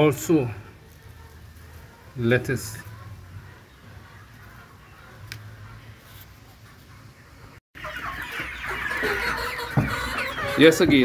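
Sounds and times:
hens clucking: 0.0 - 11.0.

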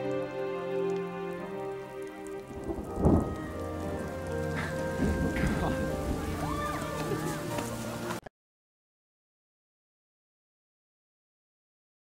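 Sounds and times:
heavy rain: 0.0 - 8.2
soft musical score: 0.0 - 8.3
loud thunder crack: 2.6 - 7.5.

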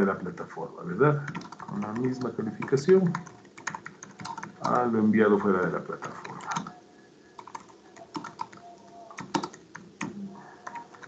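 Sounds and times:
keyboard typing: 1.2 - 6.8, 7.4 - 11.0.

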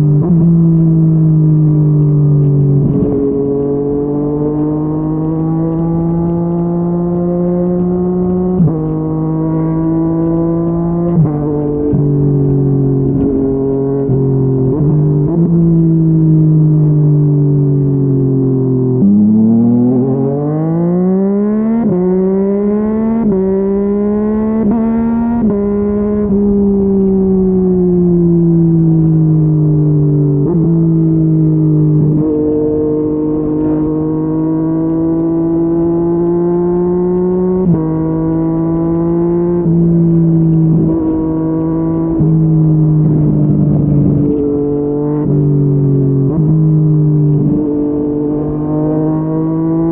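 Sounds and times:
motorcycle engine cruising: 0.0 - 49.9
motorcycle engine revving with upshifts: 0.0 - 49.9.

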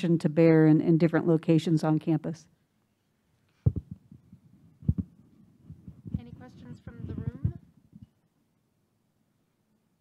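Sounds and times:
microphone handling thumps: 3.6 - 8.1.

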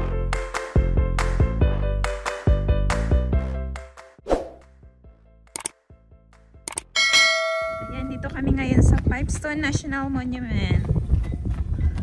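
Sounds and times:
short clicks: 5.5 - 5.8, 6.7 - 6.9
bell-like notification ding: 7.0 - 8.4.

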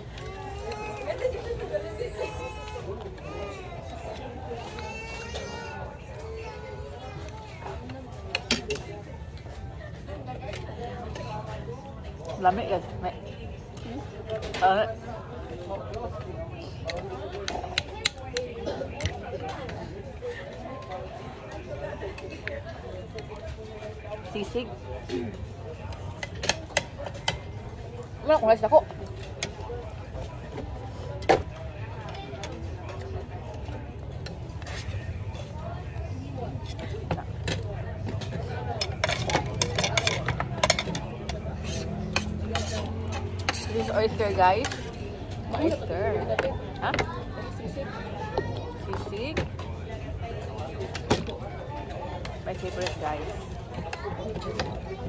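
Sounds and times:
murmur of faint voices: 0.0 - 55.0.

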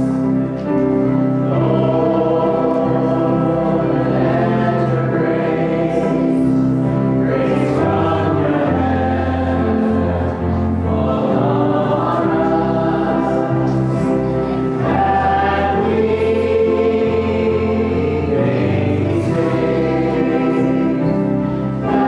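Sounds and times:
congregation singing a hymn: 0.0 - 22.0
worship band with keyboard and guitar: 0.0 - 22.0.

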